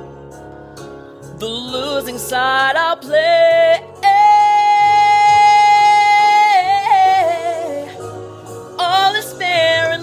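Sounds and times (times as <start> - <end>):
man singing high note: 3.8 - 8.0.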